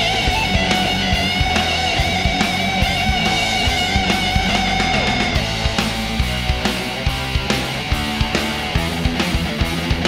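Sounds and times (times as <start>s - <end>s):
distorted electric guitar: 0.0s - 10.0s
fast driving drum beat: 0.0s - 10.0s.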